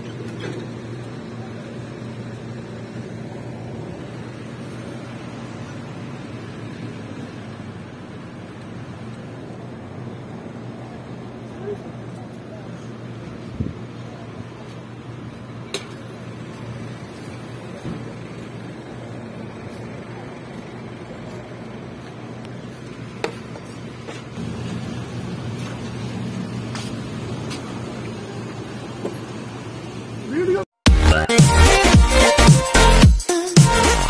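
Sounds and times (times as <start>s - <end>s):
traffic hum: 0.0s - 30.8s.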